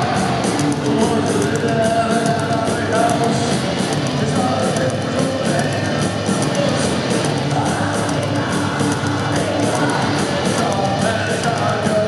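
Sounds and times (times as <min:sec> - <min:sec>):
distorted guitars: 0:00.0 - 0:12.0
driving drum beat: 0:00.0 - 0:12.0
man singing and yelling: 0:00.0 - 0:12.0.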